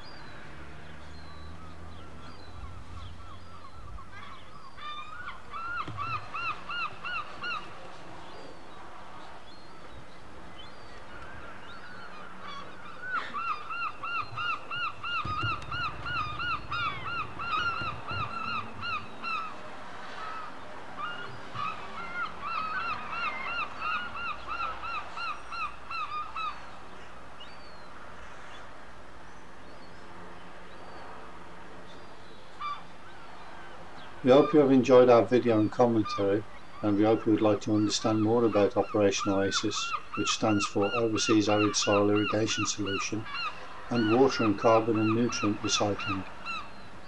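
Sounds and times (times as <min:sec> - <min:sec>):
bird calling rapid notes: 0:12.4 - 0:19.6, 0:35.8 - 0:46.8.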